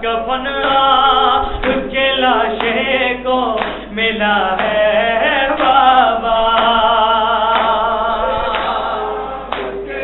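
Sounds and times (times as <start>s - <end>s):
man chanting a lament: 0.0s - 10.0s.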